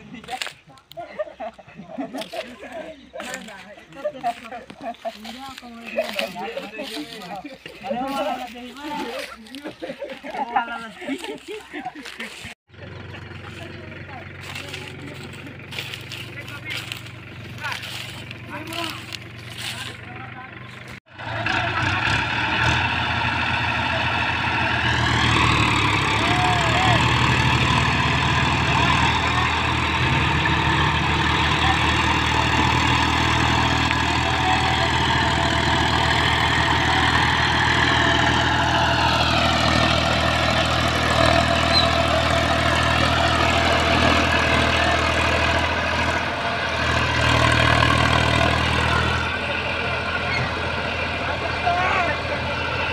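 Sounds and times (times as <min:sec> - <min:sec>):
tractor diesel engines pulling hard: 0:00.0 - 0:52.9.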